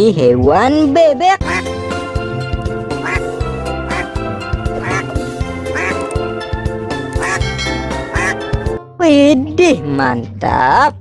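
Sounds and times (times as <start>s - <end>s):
duck quacking: 1.4s - 1.8s, 3.0s - 6.1s, 7.2s - 8.5s
background music with beat: 1.4s - 8.8s.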